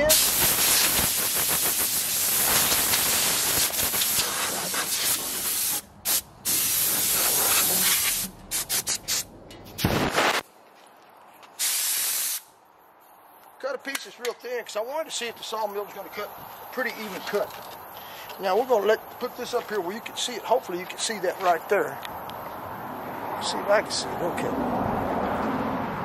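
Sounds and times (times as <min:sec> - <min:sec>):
compressed air blow gun hissing: 0:00.0 - 0:09.2, 0:11.6 - 0:12.5.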